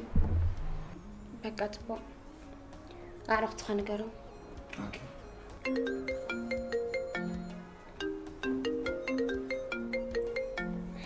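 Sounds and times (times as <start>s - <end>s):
marimba phone ringtone: 4.3s - 11.0s.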